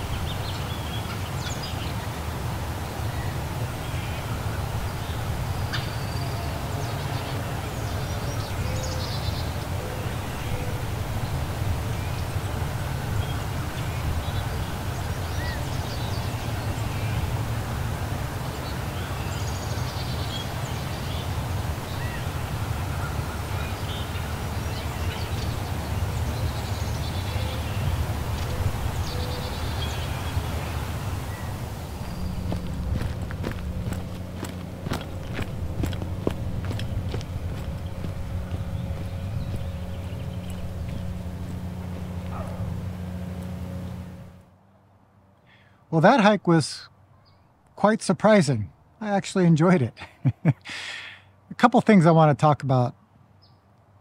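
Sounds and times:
birds chirping: 0.0s - 53.7s
steady low rumble: 20.8s - 44.5s.

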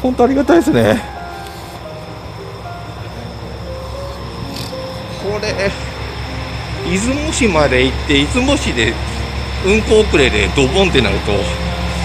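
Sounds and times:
diesel railcar idling: 0.0s - 12.0s
faint music: 0.0s - 12.0s.

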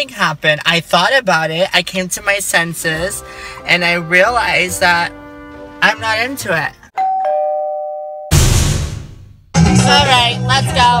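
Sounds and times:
two-note ding-dong chime: 7.0s - 8.3s
loud bass-heavy hit: 8.3s - 10.0s.

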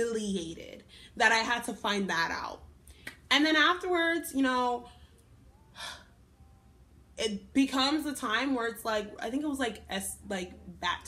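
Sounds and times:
woman talking: 0.0s - 2.6s, 3.2s - 4.9s, 7.2s - 11.0s.

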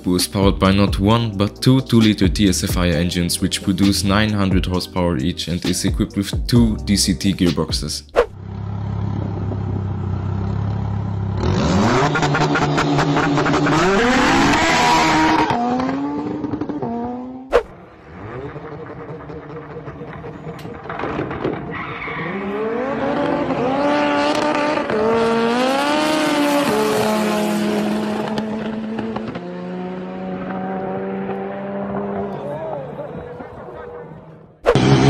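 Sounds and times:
car engine accelerating: 8.4s - 35.0s
drag-race car accelerating: 8.4s - 35.0s.

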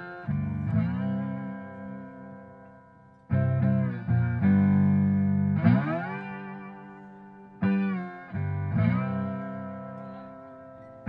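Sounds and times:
electric guitar and bass chord ringing: 0.0s - 11.0s.

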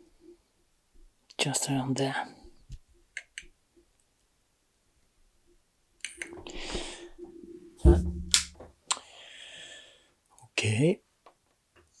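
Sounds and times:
thump on workbench: 7.8s - 8.6s
cable plug clicks: 8.2s - 8.6s.

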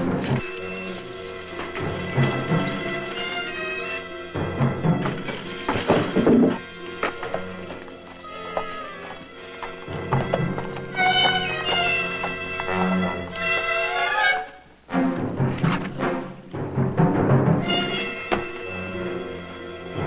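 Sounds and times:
hooves clopping: 0.0s - 16.4s, 17.1s - 20.0s
background music score: 0.0s - 20.0s
horse neighing: 5.9s - 14.6s.

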